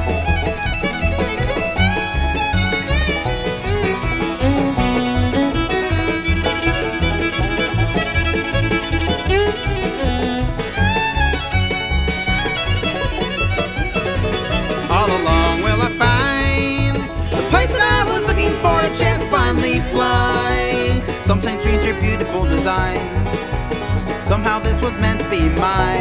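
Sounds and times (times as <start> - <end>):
fiddle melody: 0.0 - 26.0
low bass pulse: 0.0 - 26.0
strummed acoustic guitar: 0.0 - 26.0.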